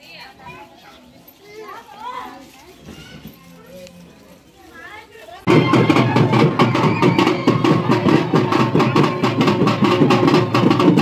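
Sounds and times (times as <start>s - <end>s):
children chattering and calling out: 0.0s - 11.0s.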